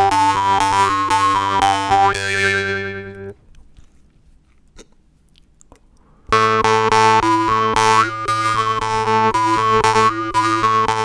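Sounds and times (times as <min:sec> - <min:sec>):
jaw harp playing: 0:00.0 - 0:03.4, 0:06.3 - 0:11.0.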